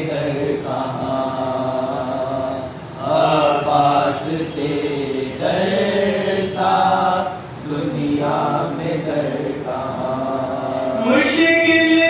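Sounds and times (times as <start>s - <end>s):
young male voices chanting: 0.0s - 12.0s.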